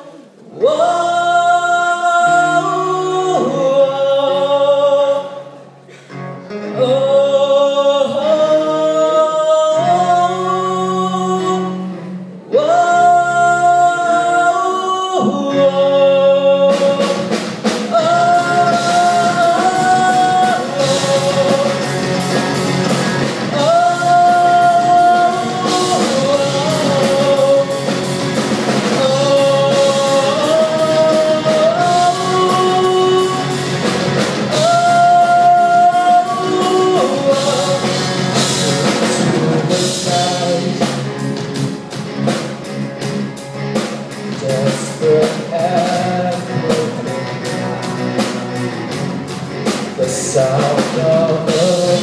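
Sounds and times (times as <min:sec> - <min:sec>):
drums and rock band: 0:00.0 - 0:52.0
guitar: 0:00.0 - 0:52.0
voices singing along: 0:12.4 - 0:41.1.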